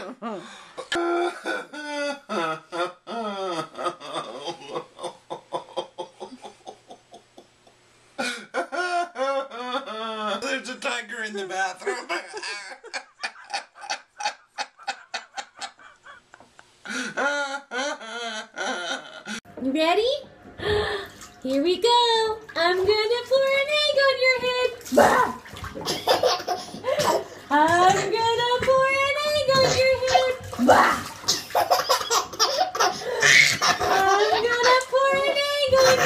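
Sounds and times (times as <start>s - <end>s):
man laughing breathlessly: 0.0s - 7.0s, 8.2s - 10.4s, 12.1s - 19.4s
baby laughing: 25.9s - 28.2s, 29.4s - 30.6s, 31.2s - 36.0s.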